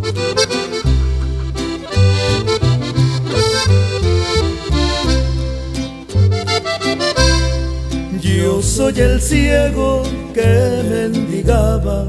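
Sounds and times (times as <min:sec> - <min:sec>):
button accordion melody: 0:00.0 - 0:08.2
upright bass low notes: 0:00.0 - 0:12.0.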